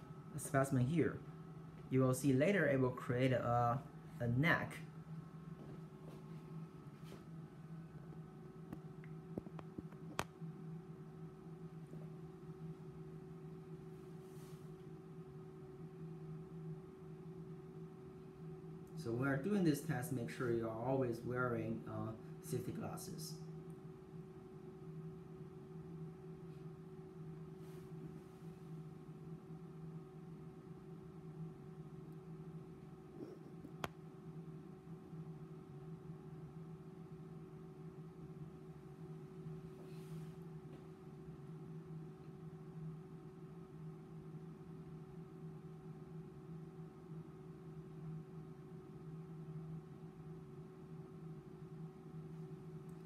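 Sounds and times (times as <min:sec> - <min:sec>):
testing machine drive humming: 0:00.0 - 0:14.2
faint machine hum: 0:00.0 - 0:53.0
lower wavering hum: 0:00.0 - 0:53.0.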